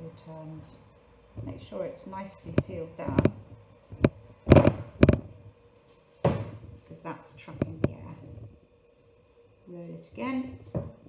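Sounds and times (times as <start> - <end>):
pastry pressed on steel worktop: 2.4 - 5.4.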